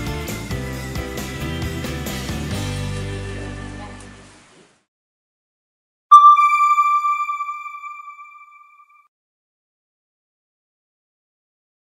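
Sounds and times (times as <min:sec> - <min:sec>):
electronic chime: 0:06.1 - 0:09.0.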